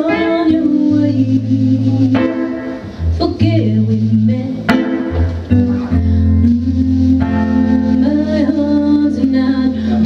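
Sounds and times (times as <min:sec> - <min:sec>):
electric guitar: 0:00.0 - 0:10.0
live band playing: 0:00.0 - 0:10.0.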